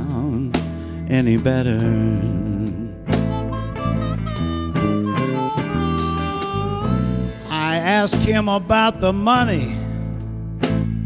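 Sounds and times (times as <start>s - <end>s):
blues band playing: 0.0s - 11.0s
electric guitar: 0.0s - 11.0s
harmonica bent notes: 3.1s - 8.1s.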